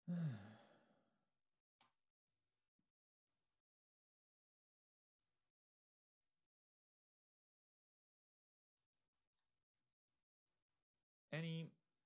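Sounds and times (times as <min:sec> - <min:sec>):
man sighing: 0:00.0 - 0:00.8.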